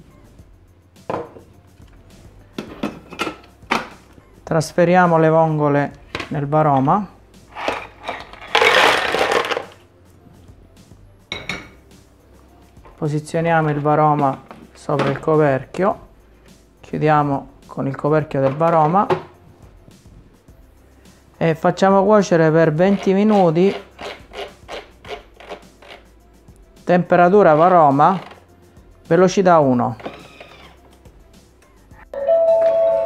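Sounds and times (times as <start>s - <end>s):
clam shells clattering: 7.6s - 9.8s.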